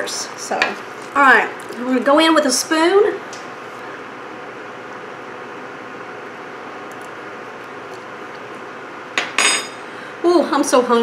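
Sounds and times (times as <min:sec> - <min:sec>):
induction burner hum and hiss: 0:00.0 - 0:11.0.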